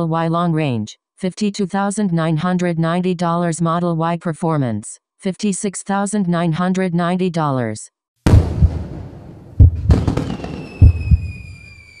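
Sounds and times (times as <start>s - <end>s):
deep paired thumps: 8.3s - 11.4s.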